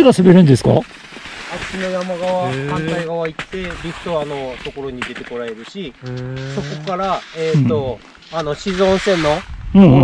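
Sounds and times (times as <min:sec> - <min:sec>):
people talking: 0:00.0 - 0:00.8, 0:01.5 - 0:10.0
hissing noise: 0:06.0 - 0:09.5.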